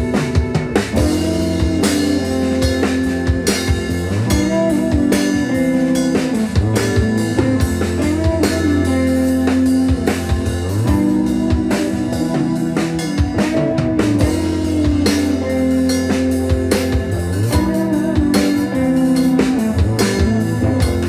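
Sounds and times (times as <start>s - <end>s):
drum kit steady beat: 0.0s - 21.0s
electric bass: 0.0s - 21.0s
electric guitar: 0.0s - 21.0s
keyboard: 0.0s - 21.0s.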